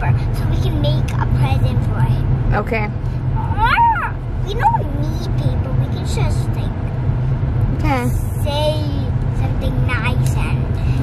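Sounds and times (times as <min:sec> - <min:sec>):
car road and engine rumble: 0:00.0 - 0:11.0
child's voice: 0:03.4 - 0:06.8, 0:07.8 - 0:11.0.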